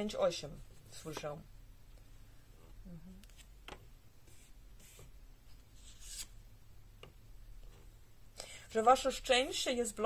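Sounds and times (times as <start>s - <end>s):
low steady hum: 0.0s - 10.0s
cards rustling on table: 4.2s - 6.4s.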